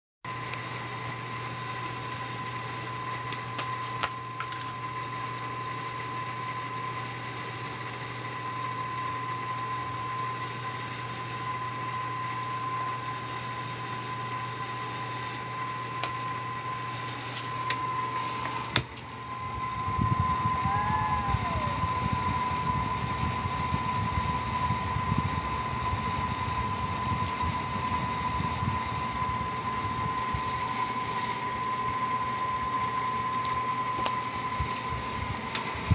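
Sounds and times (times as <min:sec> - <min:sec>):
mechanical hum: 0:00.2 - 0:35.9
high whine: 0:00.3 - 0:35.9
uneven low rumble: 0:19.3 - 0:30.5.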